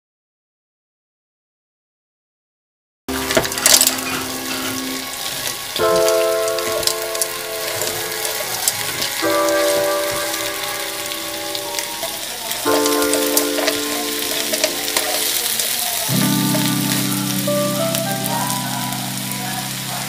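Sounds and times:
background music chords: 3.1s - 20.0s
mussels sizzling in a wok: 3.1s - 20.0s.

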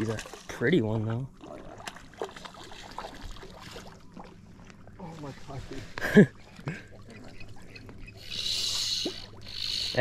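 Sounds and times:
fly reel ratchet buzzing: 8.3s - 10.0s.

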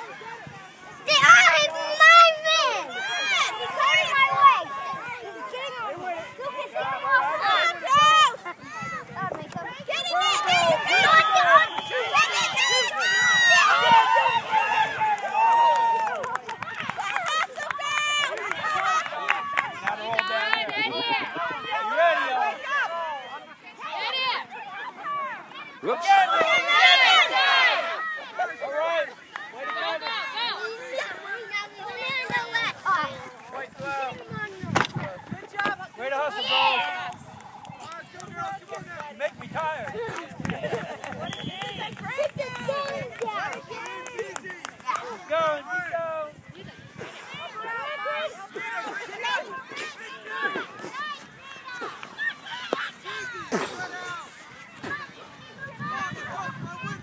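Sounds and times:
children and adults shouting: 0.0s - 57.0s.

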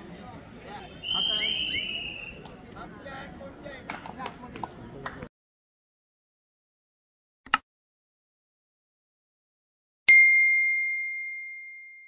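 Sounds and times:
high bell-like ding: 10.1s - 12.0s.

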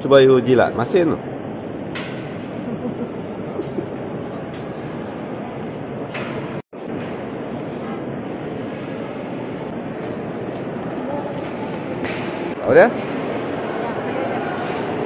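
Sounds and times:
echoing crowd voices: 7.4s - 15.0s.

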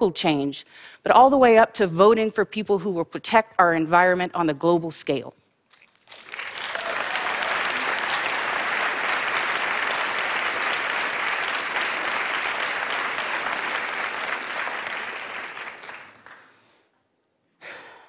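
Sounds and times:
audience applauding: 6.1s - 16.5s.

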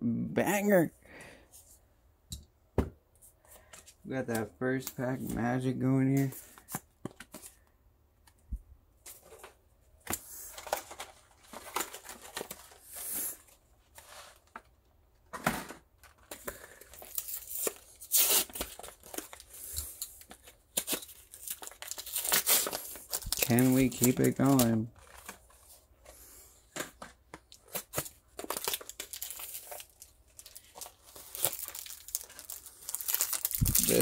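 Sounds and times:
plastic packaging crinkling and tearing: 10.5s - 13.6s, 16.0s - 25.8s, 27.4s - 34.0s.

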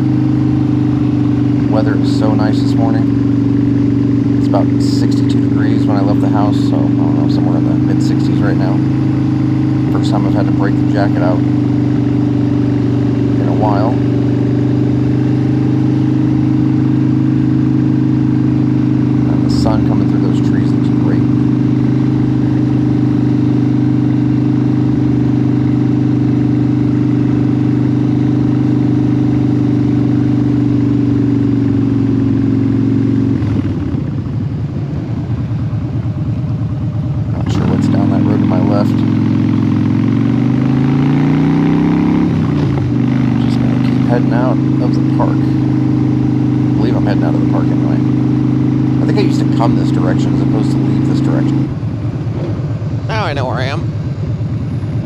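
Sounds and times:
motorcycle engine running: 0.0s - 55.0s.

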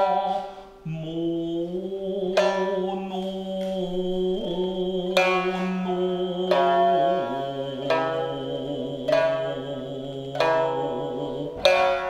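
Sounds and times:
man singing long held notes: 0.0s - 12.0s
shamisen plucking: 0.0s - 12.0s.

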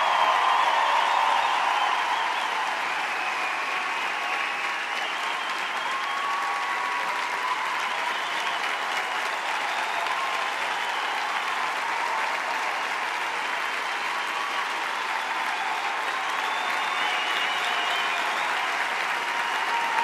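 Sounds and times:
audience applauding: 0.0s - 20.0s.

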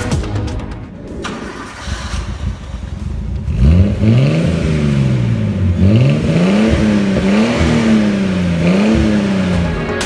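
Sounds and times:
music: 0.0s - 1.8s, 8.0s - 10.0s
car engine running: 1.0s - 10.0s.

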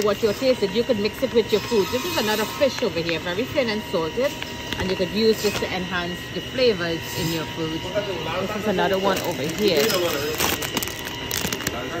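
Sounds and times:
cellophane package crinkling: 8.7s - 12.0s.

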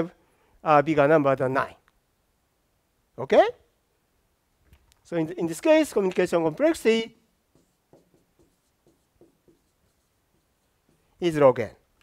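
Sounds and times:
marker squeaking on whiteboard: 5.9s - 11.4s.

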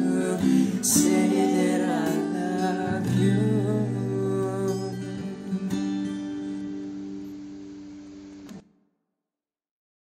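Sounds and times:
acoustic guitar chord ringing: 0.0s - 8.8s.

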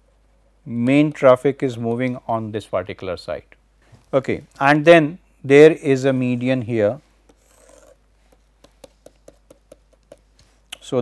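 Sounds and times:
stylus scratching on pen tablet: 7.3s - 10.4s.

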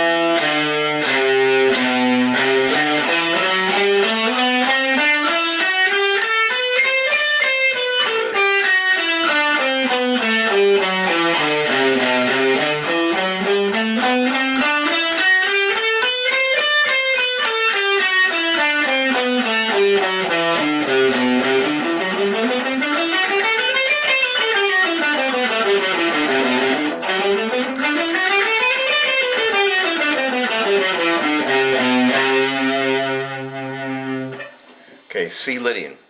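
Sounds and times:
clean electric guitar scale: 0.0s - 34.6s.

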